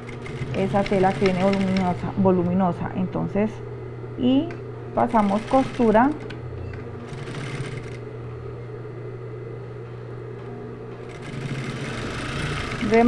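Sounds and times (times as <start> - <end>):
sewing machine stitching: 0.0 - 2.0, 5.1 - 6.4, 7.1 - 8.0, 11.1 - 13.0
steady motor hum: 0.0 - 13.0.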